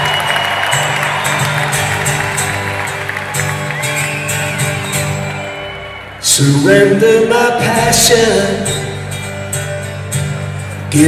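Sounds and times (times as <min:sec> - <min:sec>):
people clapping: 0:00.0 - 0:06.2
audience noise: 0:00.0 - 0:11.0.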